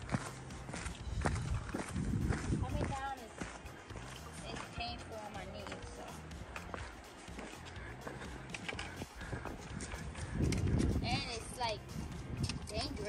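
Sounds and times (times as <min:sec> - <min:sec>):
boots scuffing on rock: 0:00.0 - 0:10.9
low rumble on microphone: 0:01.1 - 0:03.0
trekking poles clicking on rock: 0:06.4 - 0:11.1, 0:12.1 - 0:13.0.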